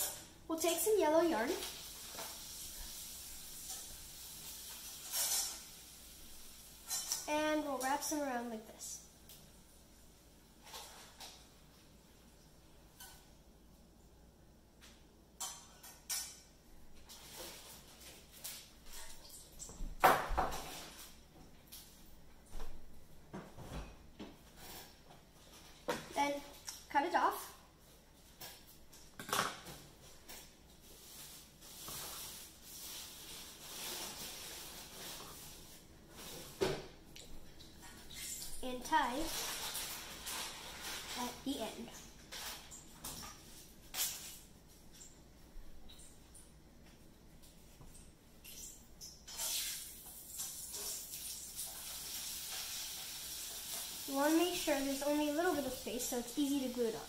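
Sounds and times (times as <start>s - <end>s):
faint hiss: 0.0s - 11.4s, 49.3s - 57.0s
woman speaking: 38.6s - 39.3s, 54.1s - 57.0s.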